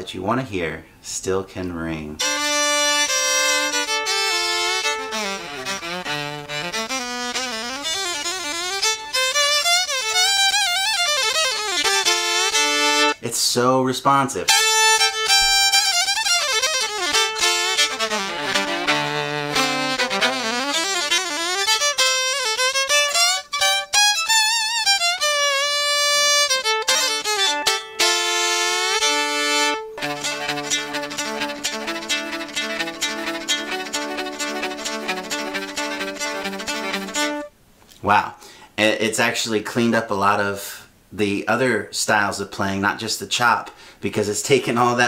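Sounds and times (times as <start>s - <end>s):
electric violin bowed melody: 2.2s - 13.2s, 14.5s - 37.5s
scratchy rhythmic bow strokes: 2.2s - 13.2s, 14.5s - 37.5s.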